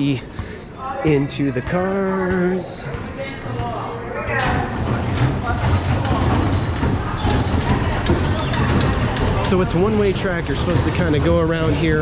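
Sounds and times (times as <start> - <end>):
bumper cars knocking and clacking: 4.4 - 12.0
bumper cars rumbling: 4.6 - 12.0.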